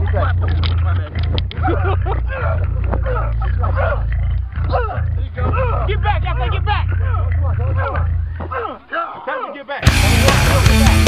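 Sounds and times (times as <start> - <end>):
steady low rumble: 0.0 - 8.6, 9.8 - 11.0
men yelling and shouting: 0.0 - 11.0.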